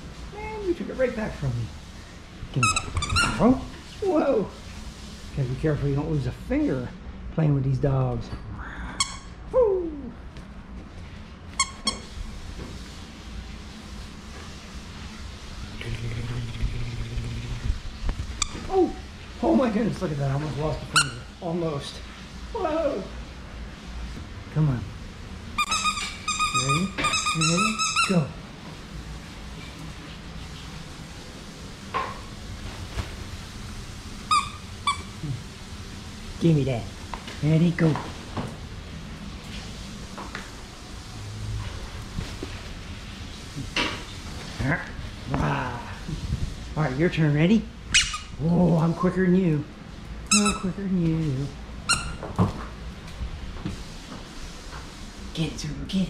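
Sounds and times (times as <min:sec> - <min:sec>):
dog squeaking: 0:02.6 - 0:03.4, 0:25.6 - 0:28.2, 0:47.9 - 0:48.4
dog chirp: 0:47.9 - 0:48.3.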